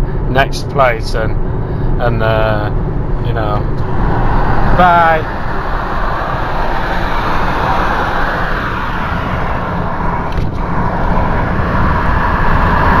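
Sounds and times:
car road noise: 0.0 - 13.0.

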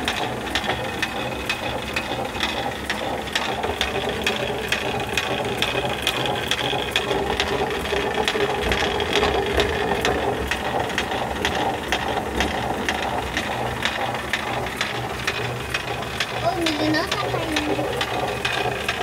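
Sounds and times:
rapid wooden clicking: 0.0 - 19.0.

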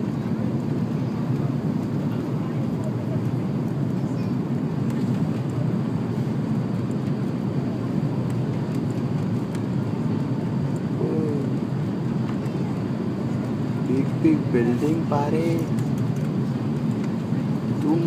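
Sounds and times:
jet engine rumble in cabin: 0.0 - 18.0.

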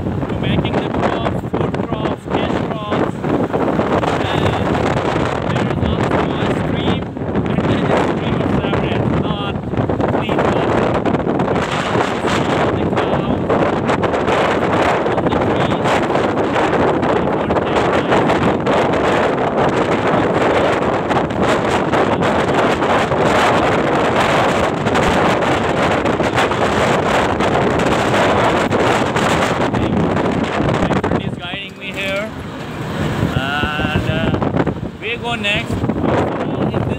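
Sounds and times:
road and vehicle noise: 0.0 - 36.9
wind buffeting microphone: 0.0 - 36.9.

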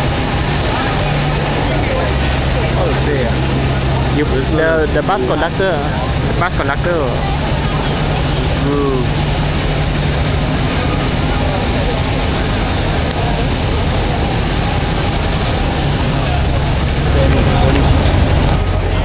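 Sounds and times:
crowd chatter: 0.0 - 19.0
low traffic hum: 0.0 - 19.0.

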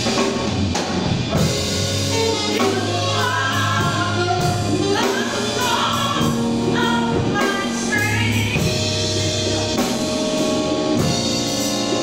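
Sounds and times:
sustained low bass: 0.0 - 12.0.

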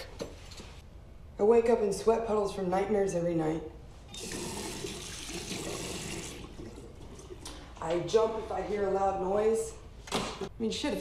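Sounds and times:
tap water running into washbasin: 4.1 - 7.6.

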